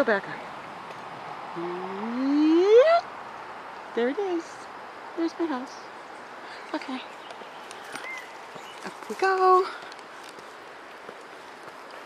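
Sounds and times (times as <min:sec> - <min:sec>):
background hiss: 0:00.0 - 0:12.0
faint footsteps outdoors: 0:00.0 - 0:12.0.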